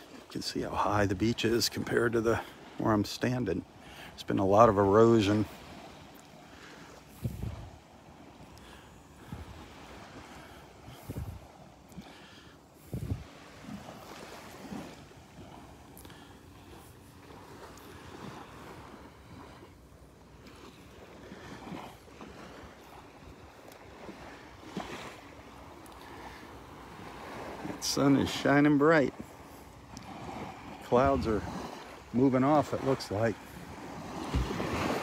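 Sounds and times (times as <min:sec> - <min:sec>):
seawater lapping at shoreline: 0:00.0 - 0:35.0
wind thumps on microphone: 0:07.2 - 0:07.8, 0:11.0 - 0:11.5, 0:12.8 - 0:13.3, 0:34.2 - 0:35.0.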